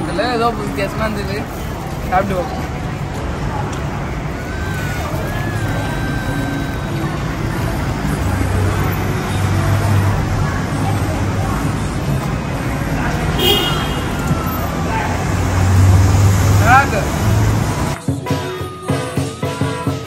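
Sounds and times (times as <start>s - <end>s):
road traffic rumble: 0.0s - 18.3s.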